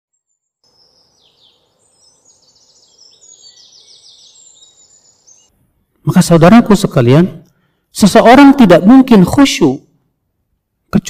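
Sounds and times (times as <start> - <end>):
birds chirping and trilling: 0.1 - 8.6
person speaking: 6.0 - 9.8.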